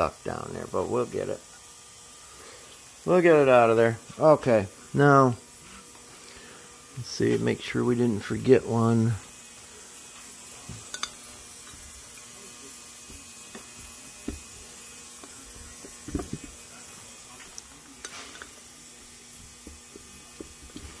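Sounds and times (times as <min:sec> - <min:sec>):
steady hiss and hum: 0:00.0 - 0:21.0
tools handling metal parts: 0:10.7 - 0:12.1, 0:17.5 - 0:18.6.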